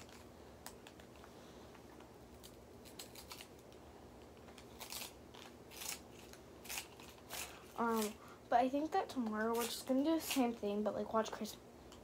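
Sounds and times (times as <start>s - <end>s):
faint steady hum: 0.0s - 12.0s
person speaking: 7.7s - 11.6s.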